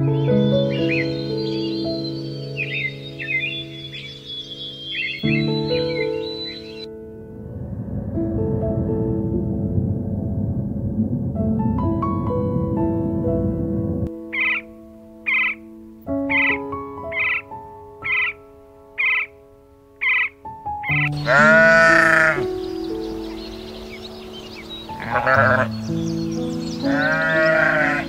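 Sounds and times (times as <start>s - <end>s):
high bird calls: 0.0s - 6.9s, 14.3s - 18.4s, 19.0s - 19.4s, 20.0s - 28.0s
gentle piano music: 0.0s - 28.0s
sheep bleating: 21.2s - 22.5s, 25.0s - 25.7s, 26.9s - 28.0s.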